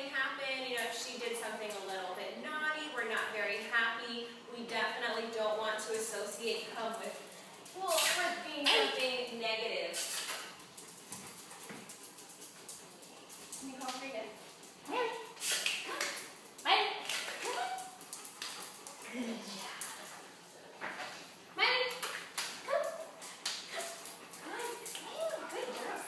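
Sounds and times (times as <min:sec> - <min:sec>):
light rustles and ticks: 0:10.0 - 0:21.3
faint dog: 0:17.4 - 0:20.2, 0:22.6 - 0:26.0.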